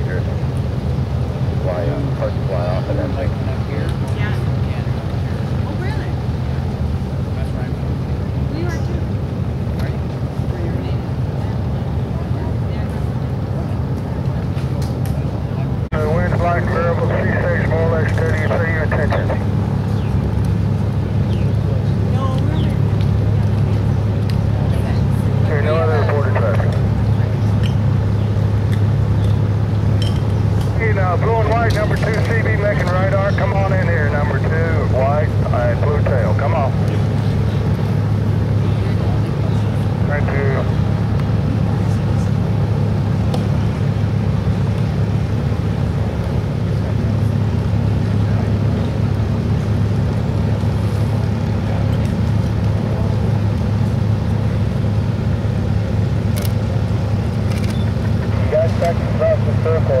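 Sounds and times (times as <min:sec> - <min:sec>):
engine drone: 0:00.0 - 1:00.0
voices: 0:00.0 - 1:00.0.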